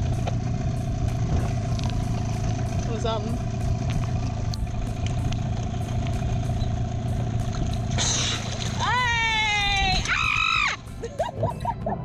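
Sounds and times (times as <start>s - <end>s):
outboard motor idling: 0.0s - 11.3s.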